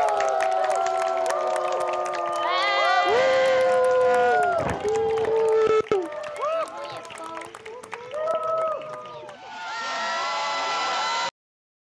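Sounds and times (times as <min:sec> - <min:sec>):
audience cheering: 0:00.0 - 0:11.3.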